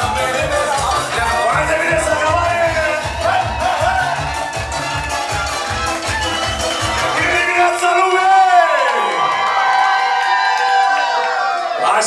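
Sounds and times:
dance music pitch sweep: 0:00.0 - 0:08.2
crowd cheering and shouting: 0:00.0 - 0:12.0.

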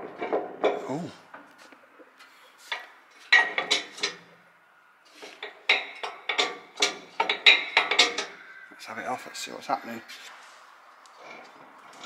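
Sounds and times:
metal tools clinking and clanking: 0:02.7 - 0:04.2, 0:05.3 - 0:08.4.

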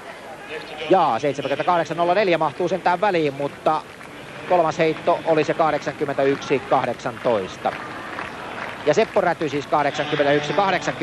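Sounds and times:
man commentating: 0:00.4 - 0:07.8, 0:08.8 - 0:11.0.

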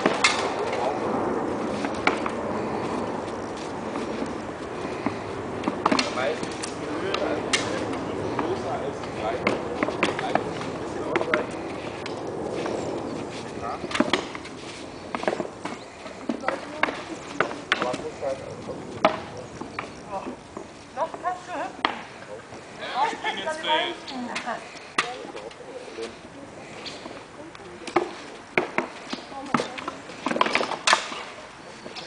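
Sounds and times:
voices: 0:00.0 - 0:32.0
people talking: 0:06.0 - 0:11.6, 0:16.3 - 0:20.4, 0:29.3 - 0:30.1.

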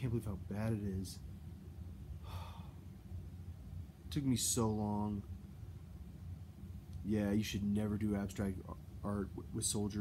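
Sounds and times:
man speaking: 0:00.0 - 0:01.2, 0:07.0 - 0:10.0
low steady hum: 0:00.0 - 0:10.0
man sighing: 0:02.2 - 0:02.8.

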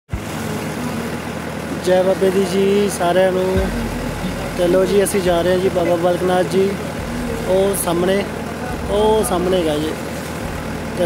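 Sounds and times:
boat engine humming: 0:00.1 - 0:11.0
man's voice: 0:01.8 - 0:10.0.

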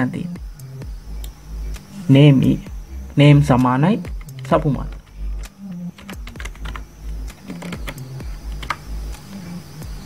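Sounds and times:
computer keyboard typing: 0:04.1 - 0:09.3.

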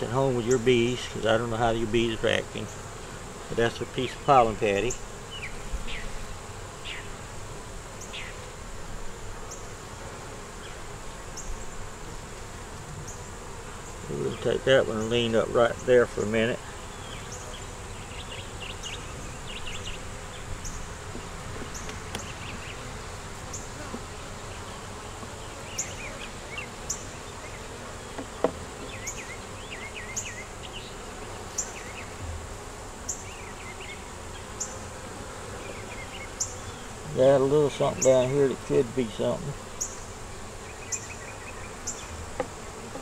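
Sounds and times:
bees buzzing: 0:00.0 - 0:43.0.

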